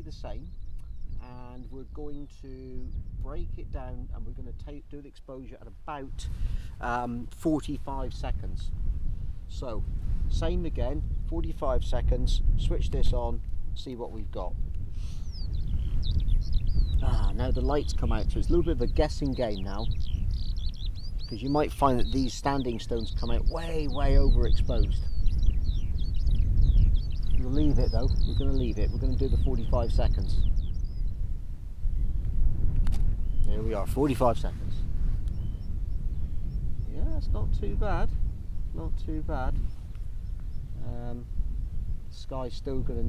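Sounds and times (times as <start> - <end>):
wind rumble on microphone: 0.0 - 43.0
small bird chirping and whistling: 15.0 - 31.2, 33.2 - 33.6, 35.3 - 37.2.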